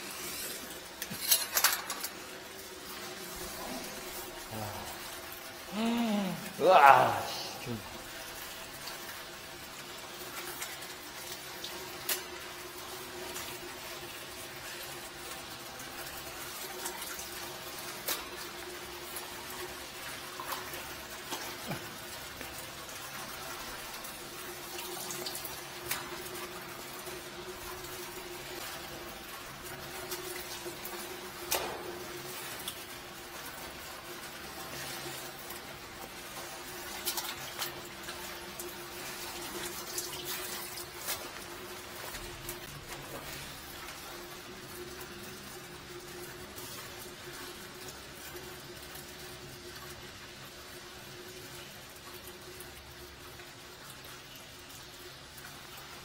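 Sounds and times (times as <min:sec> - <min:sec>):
water running in a pit: 0:00.0 - 0:56.0.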